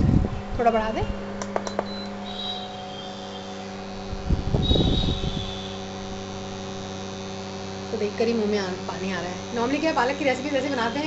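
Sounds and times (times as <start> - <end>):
induction cooktop hum: 0.0 - 11.0.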